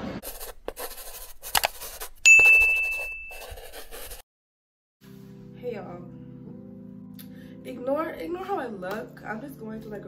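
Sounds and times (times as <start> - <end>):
bright bell ding: 2.3 - 3.4.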